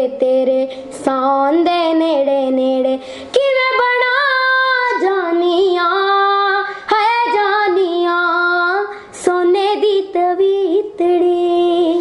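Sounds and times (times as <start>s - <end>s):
girl singing unaccompanied: 0.0s - 12.0s.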